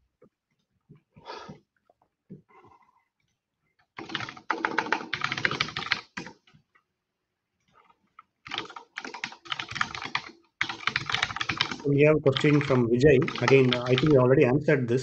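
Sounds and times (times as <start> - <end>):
rapid typing on keyboard: 4.0 - 6.4, 8.4 - 14.2.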